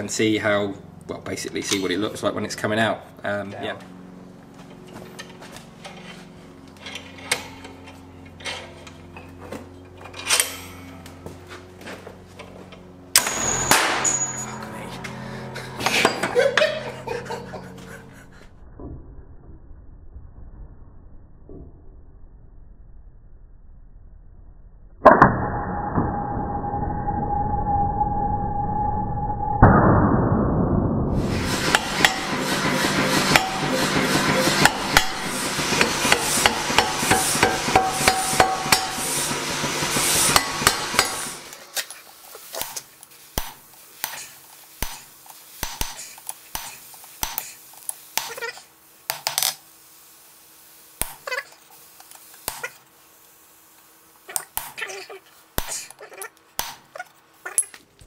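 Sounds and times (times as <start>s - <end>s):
angle grinder whining: 13.1s - 18.5s, 31.1s - 41.6s
power hammer blows on hot steel: 13.1s - 18.5s, 31.1s - 41.6s
hammer strikes on punch over anvil: 31.7s - 32.4s, 33.3s - 33.8s, 34.6s - 39.1s, 40.3s - 41.2s.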